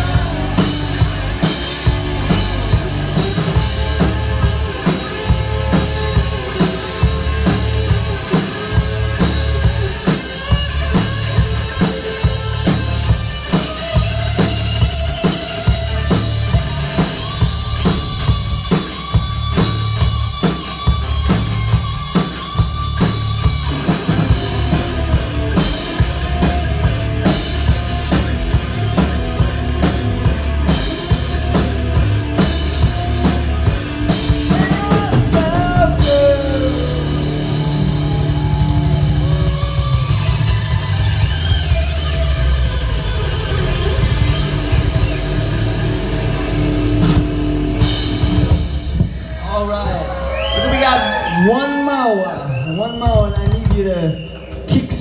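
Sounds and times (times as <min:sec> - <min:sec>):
bass drum: 0:00.0 - 0:22.0
electric guitar: 0:00.0 - 0:49.4.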